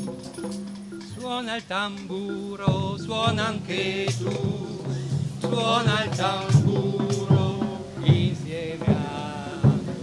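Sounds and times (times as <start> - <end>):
drum hits: 0.0 - 10.0
group singing: 2.0 - 10.0.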